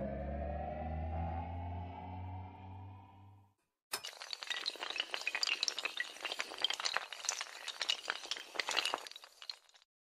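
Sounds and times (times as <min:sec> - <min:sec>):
sustained music chord: 0:00.0 - 0:03.4
dominoes clattering and falling: 0:04.0 - 0:09.8.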